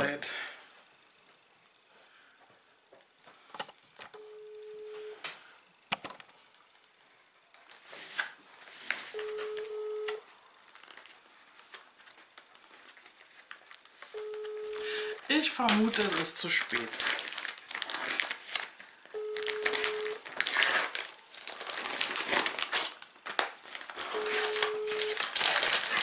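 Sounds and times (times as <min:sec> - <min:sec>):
phone ringback tone beeps: 0:04.2 - 0:05.2, 0:09.2 - 0:10.2, 0:14.2 - 0:15.2, 0:19.2 - 0:20.2, 0:24.1 - 0:25.2.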